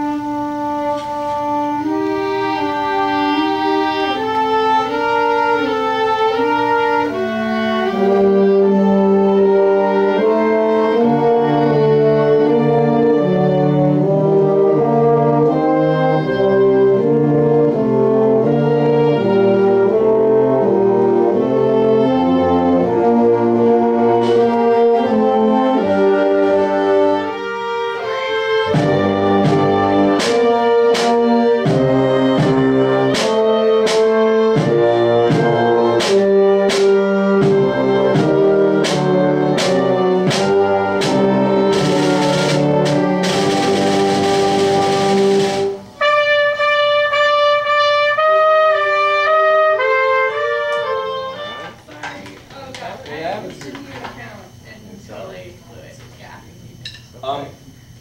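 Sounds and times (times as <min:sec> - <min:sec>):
brass and strings chords: 0:00.0 - 0:51.9
sharp percussion strikes: 0:28.7 - 0:46.2.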